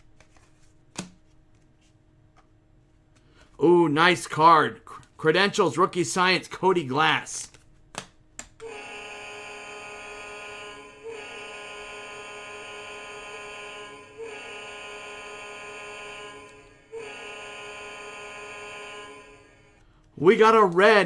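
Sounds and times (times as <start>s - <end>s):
steady buzzing tone: 8.6s - 19.8s.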